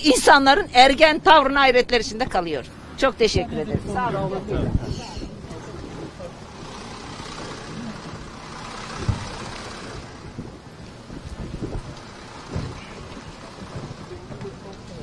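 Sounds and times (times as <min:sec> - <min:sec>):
crowd shuffling: 0:00.0 - 0:15.0
murmuring voices: 0:03.3 - 0:10.1
short thump: 0:09.0 - 0:09.3.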